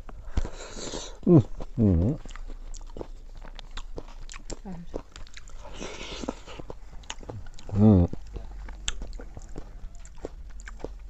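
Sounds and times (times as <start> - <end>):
wet chewing and lip-smacking: 0.0 - 11.0.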